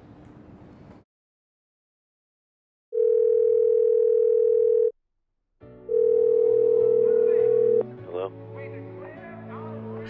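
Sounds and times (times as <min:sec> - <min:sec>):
telephone ringing tone: 0:02.9 - 0:04.9, 0:05.9 - 0:07.8.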